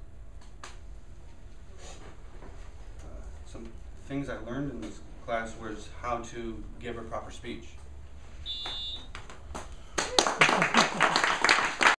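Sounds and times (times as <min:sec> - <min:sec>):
high electronic beep: 0:08.5 - 0:09.0
group applauding: 0:09.1 - 0:12.0.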